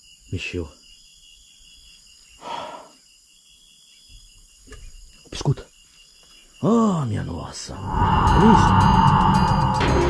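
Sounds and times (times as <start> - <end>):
insects chirping: 0.0 - 10.0
breathy exhale: 2.4 - 3.0, 7.8 - 10.0.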